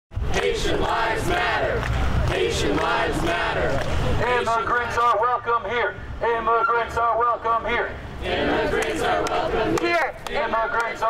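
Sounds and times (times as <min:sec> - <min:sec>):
crowd chanting in unison: 0:00.2 - 0:05.0, 0:08.1 - 0:11.0.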